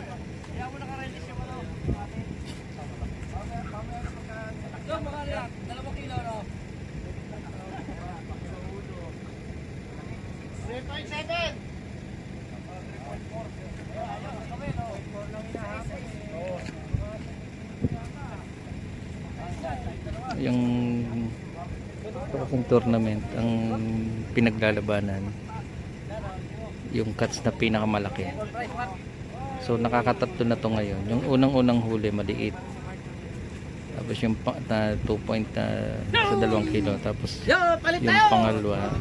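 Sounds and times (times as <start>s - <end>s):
men chattering: 0.0s - 39.0s
wind rumble on microphone: 1.3s - 4.2s, 16.8s - 18.3s, 38.7s - 39.0s.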